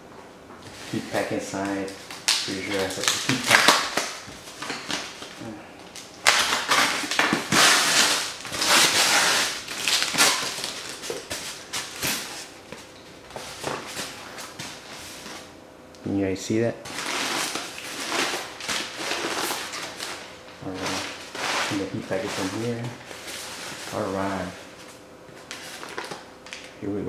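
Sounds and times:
plastic bag crinkling and rustling: 0.9s - 12.5s, 16.9s - 24.6s, 25.4s - 26.8s.

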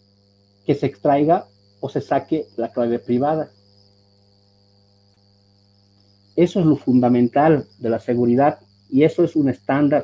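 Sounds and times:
faint low hum: 0.0s - 10.0s
thin high-pitched whine: 0.0s - 10.0s.

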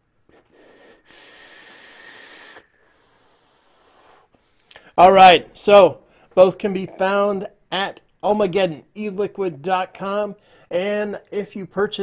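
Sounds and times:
airy hiss of e-cigarette draw: 0.3s - 4.4s.

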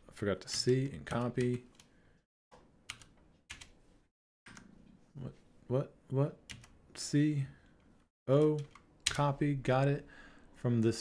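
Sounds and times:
computer keyboard keystrokes: 2.9s - 3.7s, 6.5s - 6.8s, 8.3s - 9.3s.

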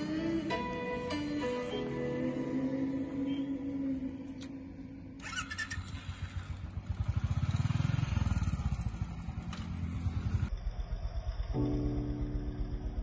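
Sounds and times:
motorcycle engine running: 4.7s - 13.0s.

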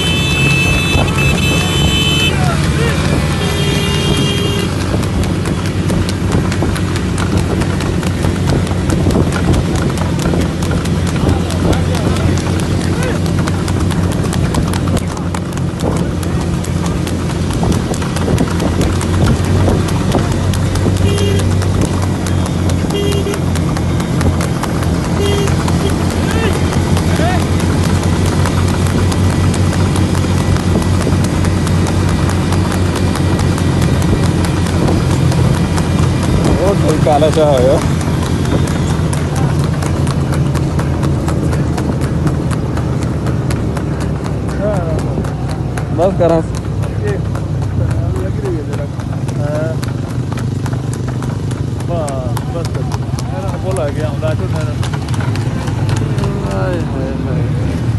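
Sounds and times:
horse hooves clip-clopping on asphalt: 0.0s - 57.9s.

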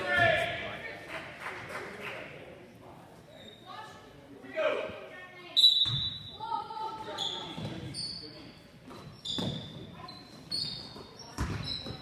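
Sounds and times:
sneakers squeaking on court: 5.6s - 12.0s.

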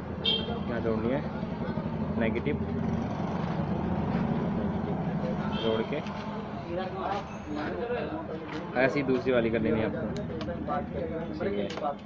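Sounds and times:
low vehicle rumble: 0.9s - 7.8s.

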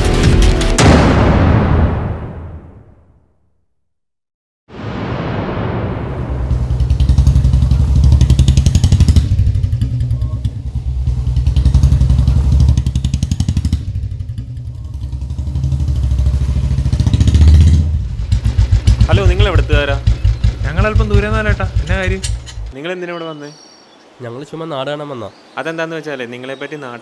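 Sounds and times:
motorcycle engine running: 6.4s - 22.7s.

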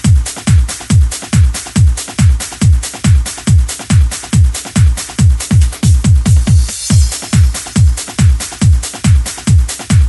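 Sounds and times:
electronic trance music: 0.0s - 10.0s
kick drum: 0.0s - 10.0s
off-beat hi-hats: 0.0s - 10.0s.

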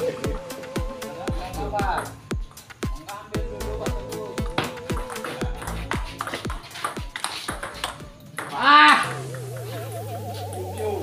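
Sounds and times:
background music with beat: 0.0s - 11.0s
table tennis ball hits: 4.4s - 9.4s.

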